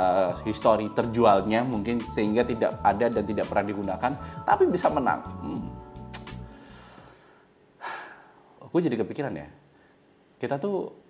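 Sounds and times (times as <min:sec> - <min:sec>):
man speaking: 0:00.0 - 0:05.8
background music: 0:00.0 - 0:07.2
man's sharp intake of breath: 0:06.4 - 0:08.6.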